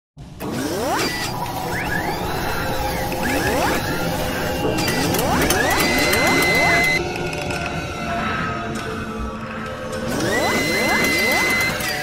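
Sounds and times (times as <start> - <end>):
dense mechanical noise: 0.2 - 7.5.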